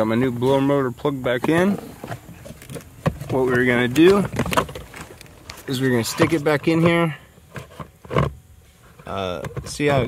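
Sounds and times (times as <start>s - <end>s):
plastic motor bumping and scraping: 1.3s - 10.0s.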